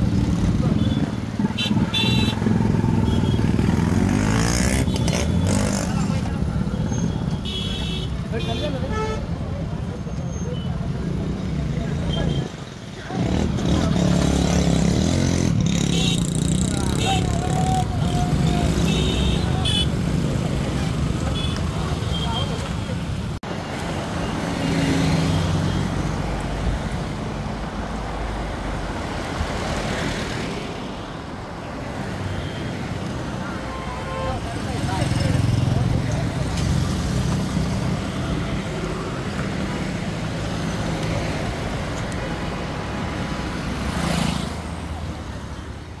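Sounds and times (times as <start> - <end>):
vehicles driving past: 0.0 - 46.0.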